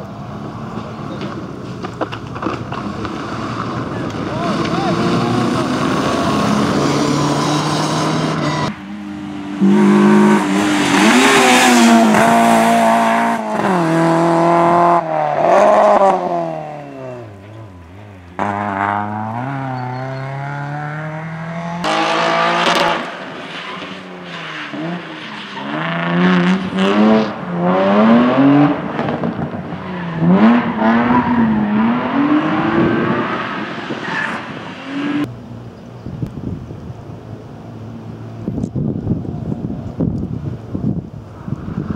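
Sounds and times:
rally car engines revving: 0.0s - 35.3s.

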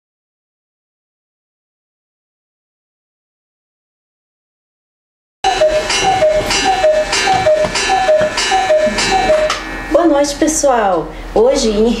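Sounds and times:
two-note tone: 5.4s - 10.8s.

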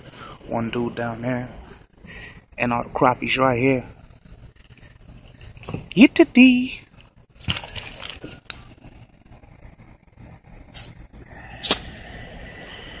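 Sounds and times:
low hiss: 0.0s - 4.0s, 10.7s - 13.0s.

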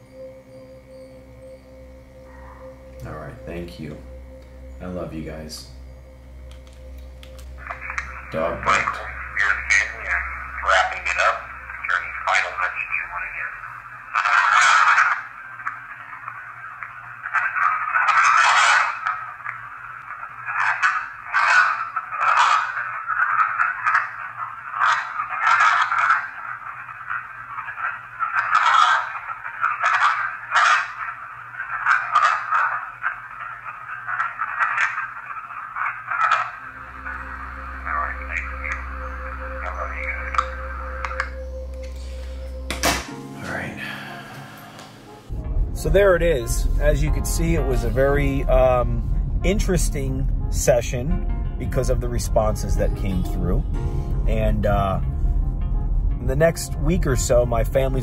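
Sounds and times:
low hum: 0.0s - 20.6s, 32.7s - 58.0s
choppy radio static: 2.3s - 44.3s, 45.8s - 53.6s
snatches of broadcast voices: 7.4s - 41.4s.

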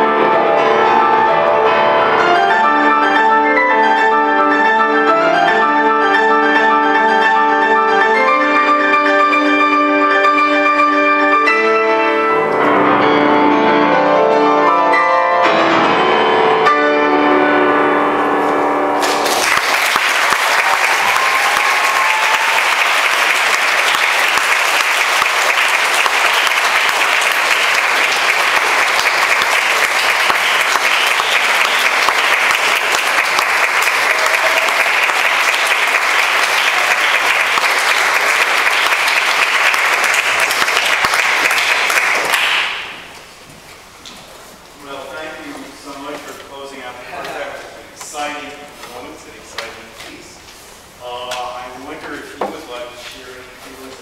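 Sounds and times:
grand piano chord: 0.0s - 19.6s
audience applauding: 19.0s - 43.3s.

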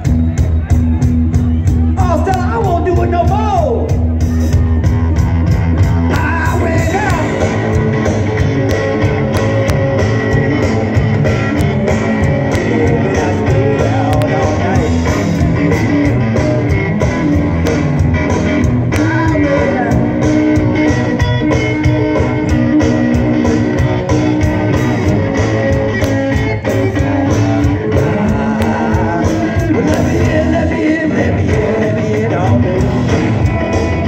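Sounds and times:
drum kit beat: 0.0s - 34.0s
electric guitar: 0.0s - 34.0s.

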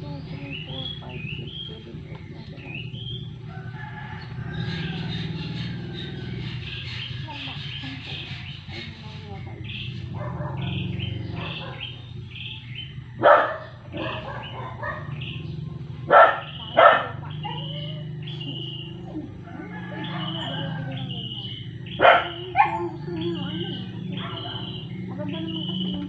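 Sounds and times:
birds chirping: 0.0s - 26.0s
dog barking: 10.0s - 12.0s, 13.2s - 15.4s, 16.0s - 24.9s.

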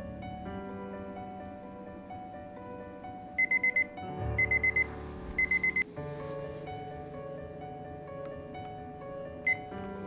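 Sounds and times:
soft background music: 0.0s - 10.0s
kitchen timer beeping: 3.4s - 5.8s, 9.5s - 9.7s.

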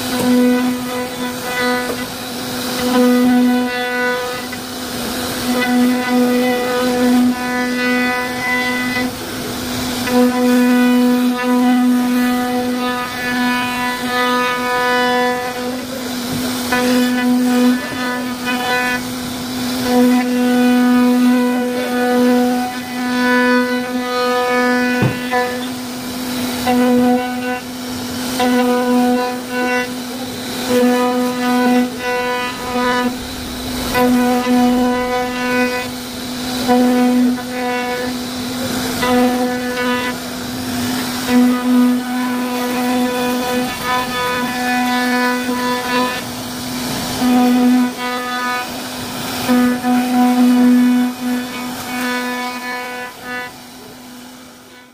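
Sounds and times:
router bit cutting wood: 0.0s - 54.9s
router spindle whining: 0.0s - 54.9s.

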